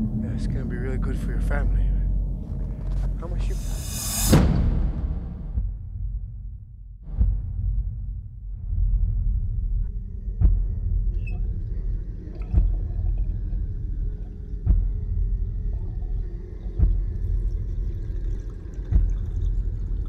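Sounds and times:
sharp low hits: 0.0s - 9.8s
low rumbling drone: 0.0s - 20.0s.

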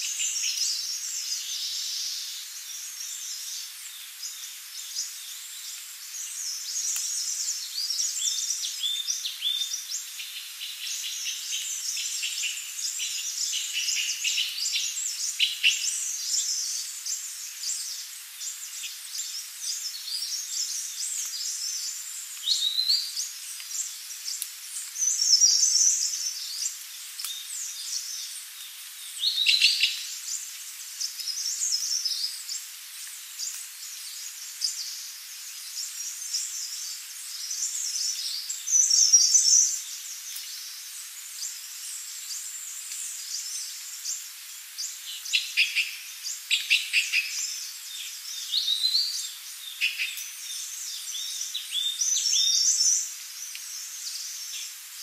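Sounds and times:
faint steady hiss: 0.0s - 55.0s
songbirds chirping and trilling: 0.0s - 55.0s.

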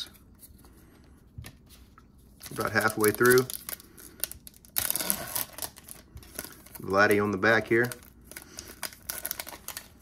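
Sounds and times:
foil wrapper tearing: 2.4s - 10.0s.

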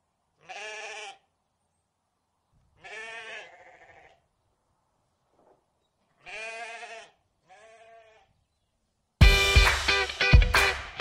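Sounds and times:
loud guitar music with hard beats: 9.2s - 11.0s.

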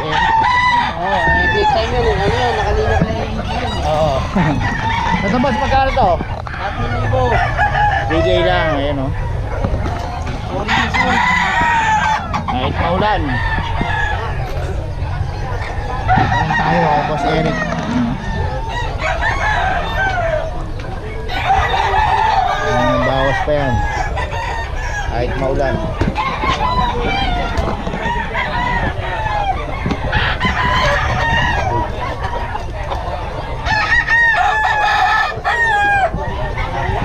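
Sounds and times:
roosters crowing and clucking: 0.0s - 37.0s.

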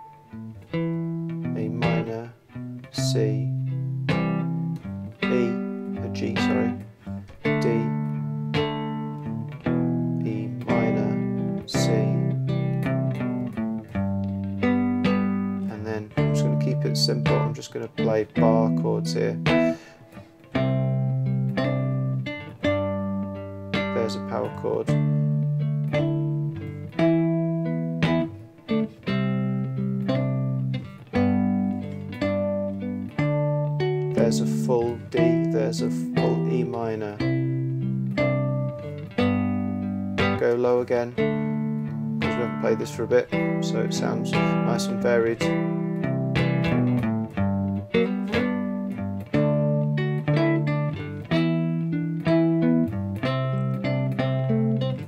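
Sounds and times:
plucked guitar chords: 0.0s - 55.0s.

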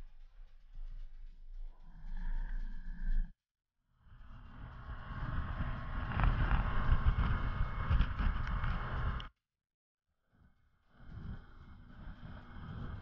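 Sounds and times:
wind buffeting microphone: 4.9s - 9.3s.

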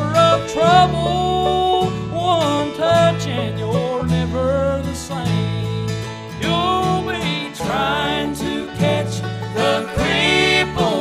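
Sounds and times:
bass guitar: 0.0s - 11.0s
man singing: 0.0s - 11.0s
strummed mandolin: 0.0s - 11.0s.

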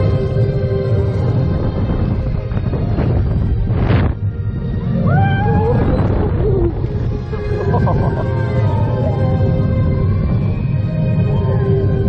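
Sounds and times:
roller coaster rumble: 0.0s - 12.0s
high wavering wail: 4.9s - 12.0s.

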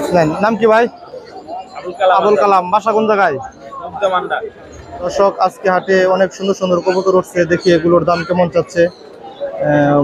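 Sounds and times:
voices: 0.0s - 10.0s.

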